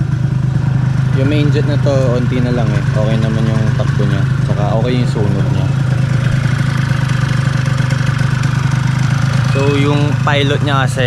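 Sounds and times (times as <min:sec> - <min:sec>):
scooter engine idling: 0:00.0 - 0:11.0.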